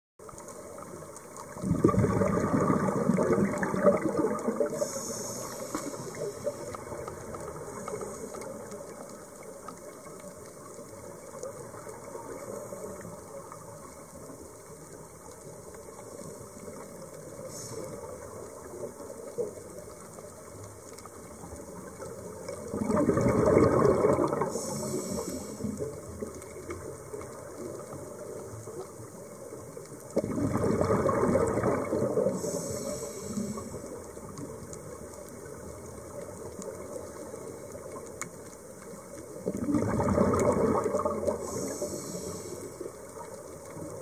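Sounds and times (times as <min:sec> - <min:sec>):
steady underwater rushing: 0:00.2 - 0:44.0
underwater breath bubbles: 0:01.4 - 0:09.5, 0:21.8 - 0:27.9, 0:30.0 - 0:34.6, 0:39.4 - 0:44.0.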